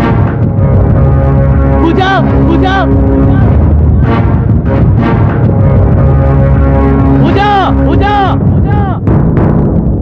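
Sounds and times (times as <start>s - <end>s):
heavy deep boom: 0.0s - 10.0s.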